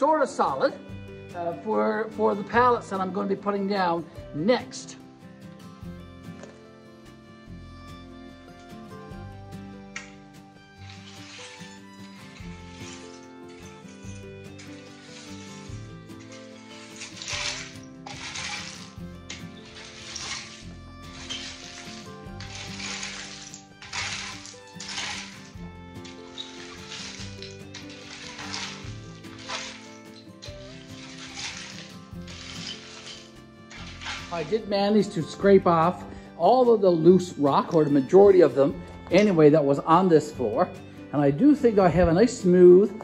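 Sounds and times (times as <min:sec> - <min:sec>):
background music: 0:00.0 - 0:43.0
rake scraping gravel: 0:10.0 - 0:35.6.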